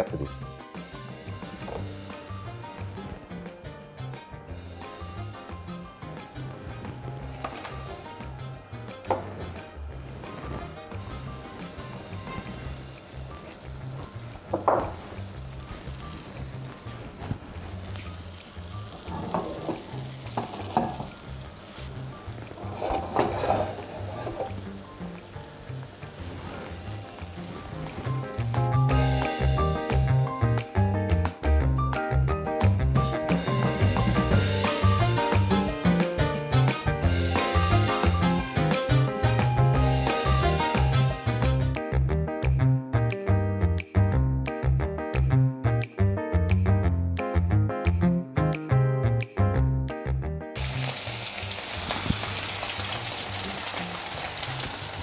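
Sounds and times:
background music: 0.0 - 55.0
butter sizzling in a frying pan: 4.8 - 30.2, 50.6 - 55.0.

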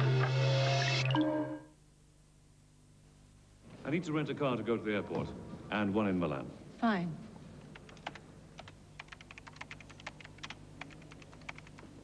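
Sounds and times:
typing on computer keyboard: 7.7 - 11.9.

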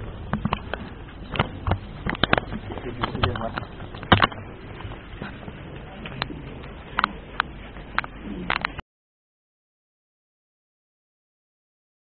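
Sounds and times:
background murmur: 0.0 - 8.8
pigeon cooing: 8.1 - 8.7.

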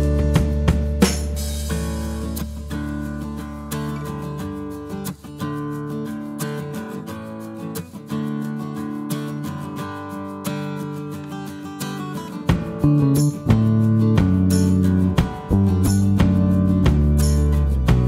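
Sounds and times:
guitar background music: 0.0 - 18.0.

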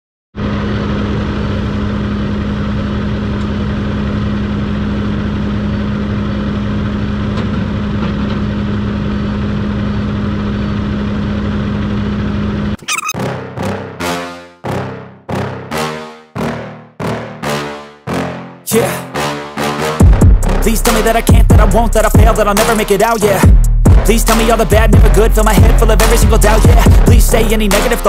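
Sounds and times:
diesel engine idling: 0.4 - 12.8, 20.4 - 28.0
music: 13.1 - 28.0.

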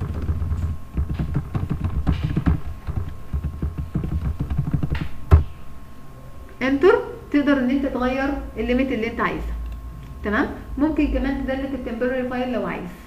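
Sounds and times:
computer keyboard typing: 0.0 - 5.4.

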